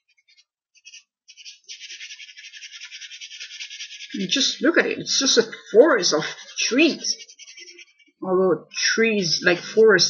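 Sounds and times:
drawing tool scratching on paper: 0.0 - 4.6, 5.3 - 8.2.

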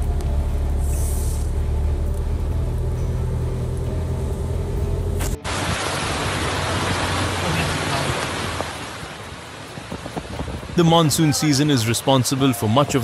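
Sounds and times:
rushing floodwater hiss: 0.7 - 1.7, 5.2 - 13.0.

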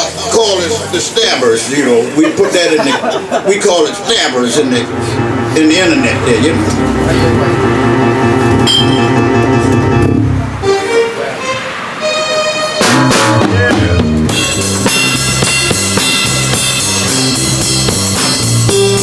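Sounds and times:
live band playing: 0.0 - 19.0
drum hits: 4.8 - 10.2, 12.8 - 19.0.

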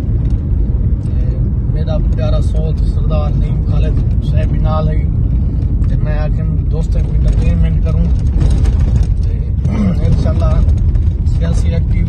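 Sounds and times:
road and engine rumble in car: 0.0 - 12.0
man talking: 1.0 - 5.2, 5.8 - 8.3, 9.1 - 12.0.

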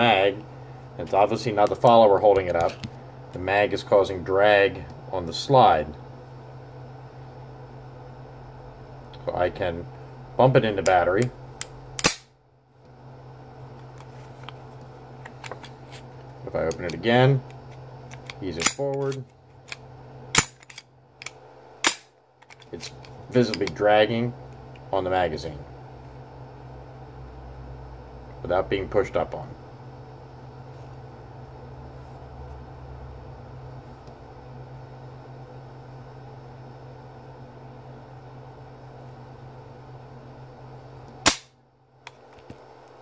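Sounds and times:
low room hum: 0.0 - 43.0.

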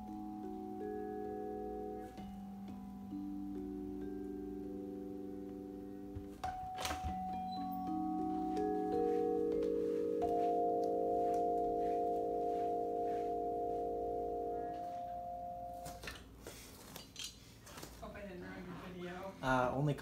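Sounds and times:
vibraphone chord: 0.0 - 16.2.

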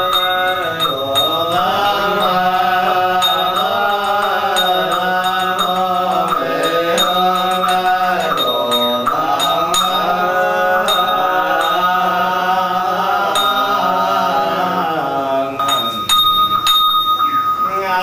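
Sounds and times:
sharp percussive strikes: 0.0 - 14.4, 15.6 - 17.8
monks chanting: 0.0 - 16.8.

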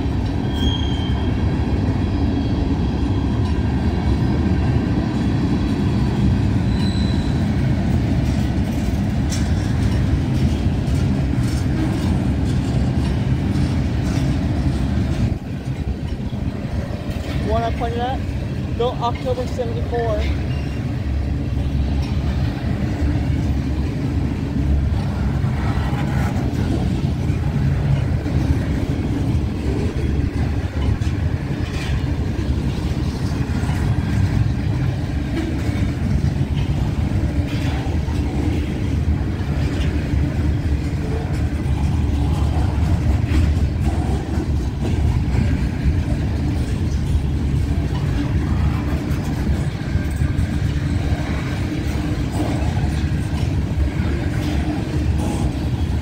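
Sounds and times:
steel wheels rumbling on rail: 0.0 - 56.0
train clicks and clanks: 0.0 - 56.0.

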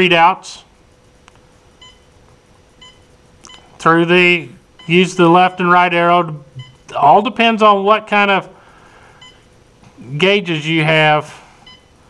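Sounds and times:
electronic key-press beeps: 1.8 - 2.1, 2.8 - 3.7, 6.5 - 6.9.

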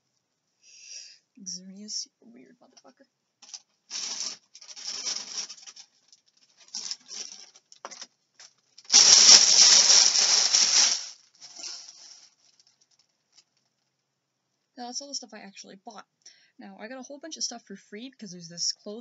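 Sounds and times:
rustling and handling noise: 2.7 - 14.0.

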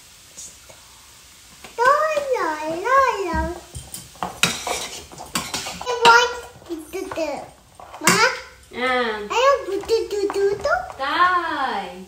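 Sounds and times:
utensils clinking against a pan: 1.8 - 11.4.

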